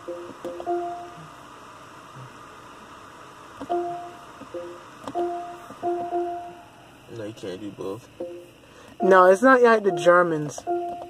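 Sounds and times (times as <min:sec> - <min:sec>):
two-tone electronic beeps: 0:03.7 - 0:06.6, 0:08.2 - 0:11.0.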